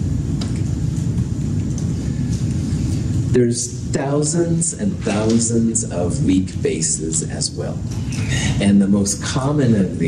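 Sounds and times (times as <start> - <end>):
low room noise rumble: 0.0 - 10.0.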